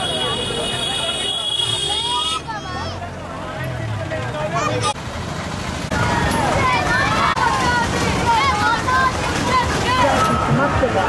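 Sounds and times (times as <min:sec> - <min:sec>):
crowd talking and calling out: 0:00.0 - 0:11.0
vehicle engine running: 0:02.6 - 0:10.1.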